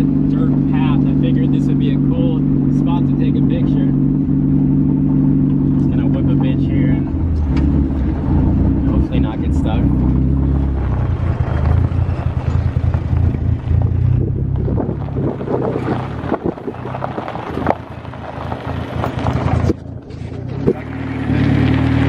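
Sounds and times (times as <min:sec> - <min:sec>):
car engine running: 0:00.0 - 0:22.0
tyres crunching on gravel: 0:00.0 - 0:22.0.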